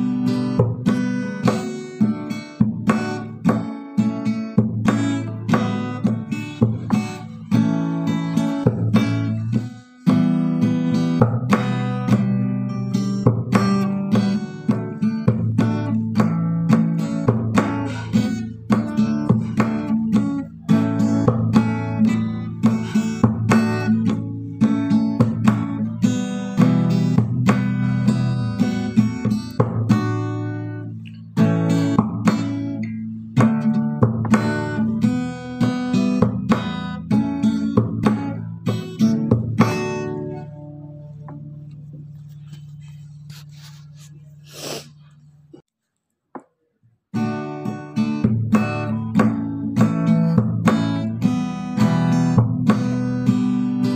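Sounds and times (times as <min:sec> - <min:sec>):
acoustic guitar strumming chords: 0:00.0 - 0:45.6, 0:47.2 - 0:53.9.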